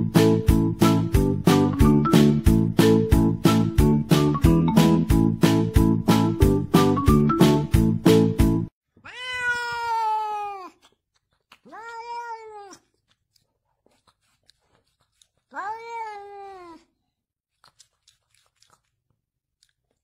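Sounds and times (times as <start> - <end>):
music: 0.0 - 8.7
cat meowing: 9.0 - 10.8, 11.6 - 12.9, 15.5 - 16.9.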